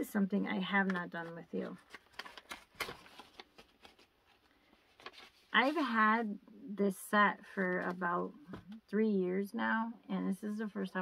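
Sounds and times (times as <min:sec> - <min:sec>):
paper crackling and rustling: 0:00.8 - 0:06.0.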